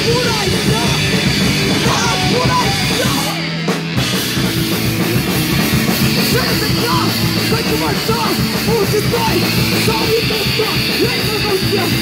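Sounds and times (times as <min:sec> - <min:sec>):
distorted electric guitars: 0:00.0 - 0:12.0
pounding drums: 0:00.0 - 0:12.0
punk band playing live: 0:00.0 - 0:12.0.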